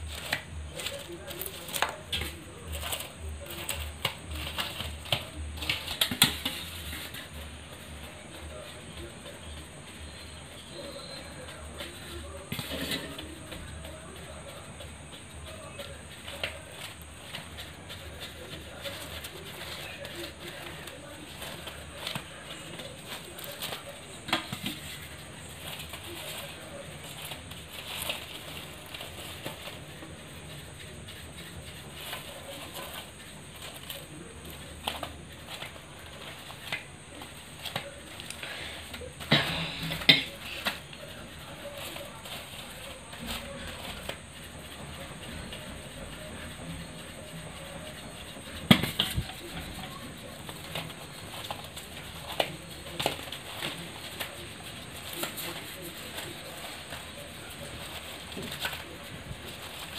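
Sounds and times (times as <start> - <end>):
dough balls knocking and scraping: 0.0 - 59.9.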